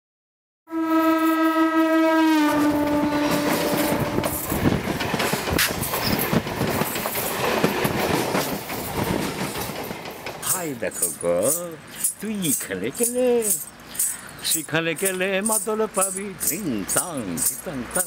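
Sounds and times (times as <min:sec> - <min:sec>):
train horn: 0:00.7 - 0:04.5
train running on track: 0:00.7 - 0:18.0.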